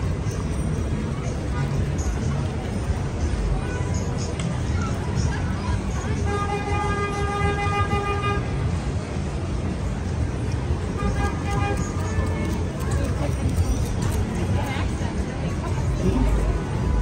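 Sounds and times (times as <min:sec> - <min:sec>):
city street traffic rumble: 0:00.0 - 0:17.0.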